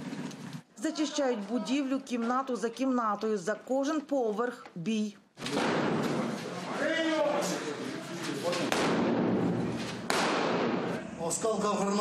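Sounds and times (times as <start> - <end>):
gunshot bangs echoing: 5.5 - 6.2, 8.6 - 11.0.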